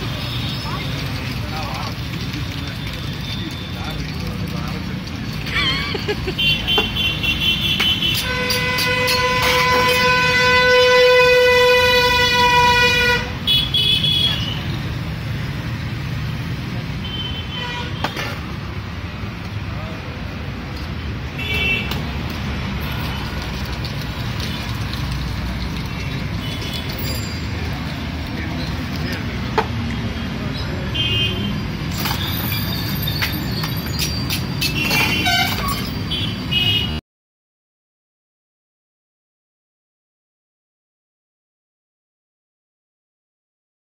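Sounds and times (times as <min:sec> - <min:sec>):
road traffic: 0:00.0 - 0:37.0
vehicle horns tooting: 0:06.3 - 0:14.7, 0:17.0 - 0:18.3, 0:21.4 - 0:22.0, 0:34.6 - 0:37.0
high-pitched horn toots: 0:08.0 - 0:13.3.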